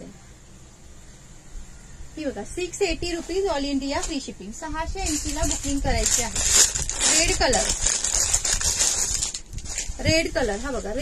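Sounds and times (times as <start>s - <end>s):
plastic wrapper crinkling: 3.3s - 11.0s.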